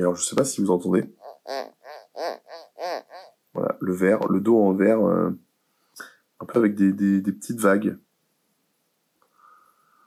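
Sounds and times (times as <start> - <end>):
fingertip squeaking on glass: 1.2 - 3.4.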